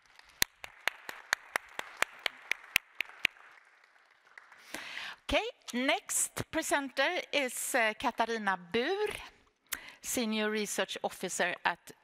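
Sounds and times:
close sharp hand claps: 0.0 - 5.0
audience applauding: 0.0 - 5.1.

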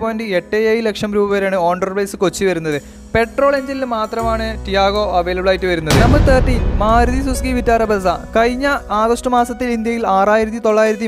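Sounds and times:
voice: 0.0 - 11.0
steady low bass: 4.3 - 10.1
deep boom with rumble: 4.6 - 10.0.

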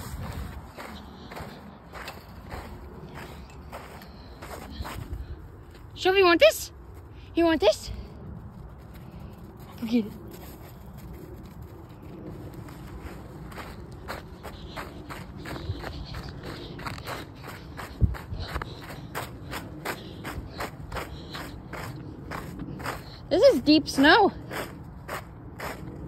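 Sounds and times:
footsteps in snow: 0.0 - 26.0.

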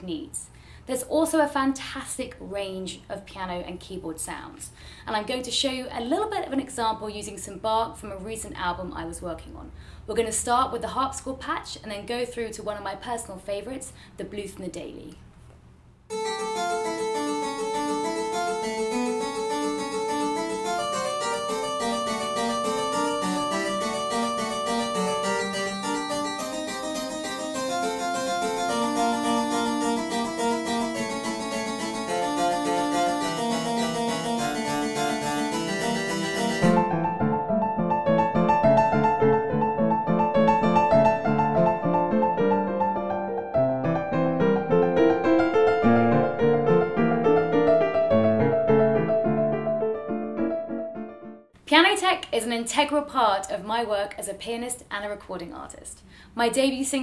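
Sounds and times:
harpsichord running notes: 16.1 - 51.4
keyboard playing rhythmic chords: 16.1 - 51.5.

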